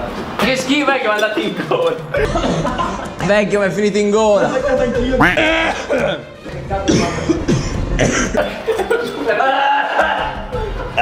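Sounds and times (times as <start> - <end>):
man coughing: 6.9 - 9.3.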